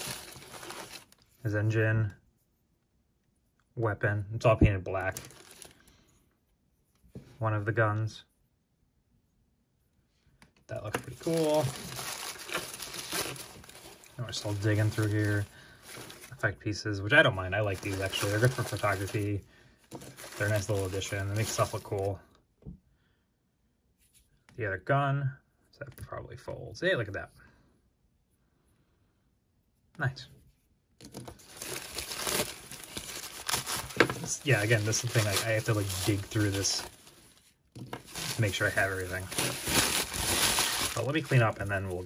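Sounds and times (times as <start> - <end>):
paper packing rustling: 0.0 - 1.2, 5.0 - 5.8, 10.8 - 16.4, 17.6 - 22.1, 31.1 - 42.0.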